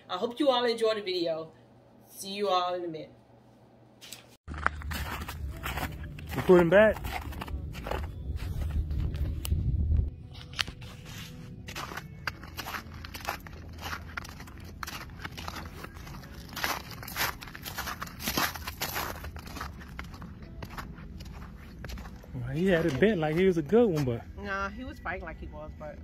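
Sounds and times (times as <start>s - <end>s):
footsteps crunching on snow: 4.5s - 9.6s, 10.4s - 24.3s
low rumble: 4.5s - 10.3s.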